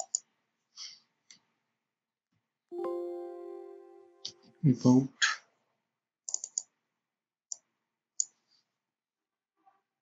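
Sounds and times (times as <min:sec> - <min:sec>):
computer mouse clicking: 0:00.0 - 0:00.2, 0:06.3 - 0:06.7.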